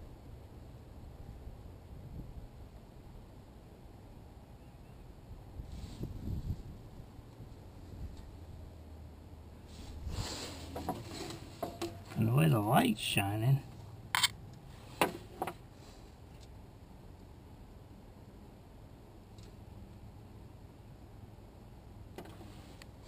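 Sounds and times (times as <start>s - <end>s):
low steady rumble: 0.0s - 23.0s.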